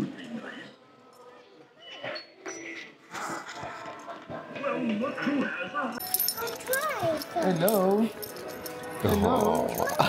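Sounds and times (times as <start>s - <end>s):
light metallic jingling: 6.0s - 10.0s.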